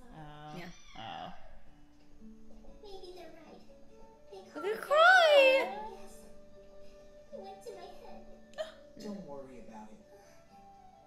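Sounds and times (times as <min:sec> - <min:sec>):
quiet dialogue: 0:00.0 - 0:11.0
soft background music: 0:00.0 - 0:11.0.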